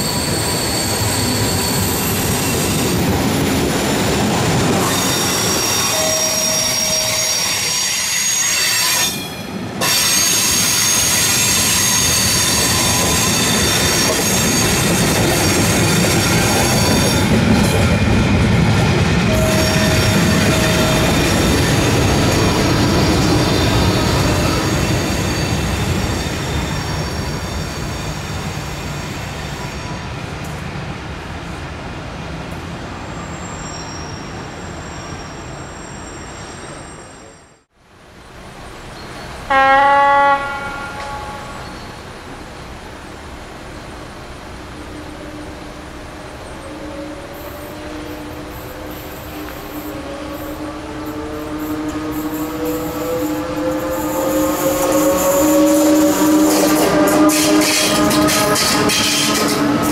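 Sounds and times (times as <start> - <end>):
high-pitched wheel squeal: 0.0 - 3.0, 4.8 - 15.6, 19.3 - 30.0, 33.2 - 37.6
train wheels rumbling on rail: 0.0 - 37.3, 40.3 - 59.9.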